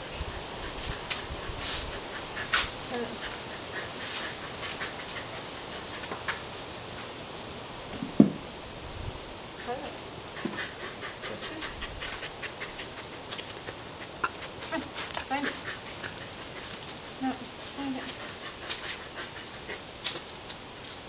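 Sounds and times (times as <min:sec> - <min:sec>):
low dog vocal sounds: 0:00.1 - 0:06.3, 0:09.6 - 0:20.0
dog sniffing: 0:00.2 - 0:06.4, 0:09.6 - 0:20.4.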